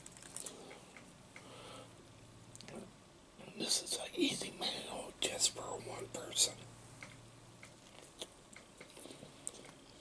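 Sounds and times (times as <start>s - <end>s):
man whispering: 2.7s - 6.7s.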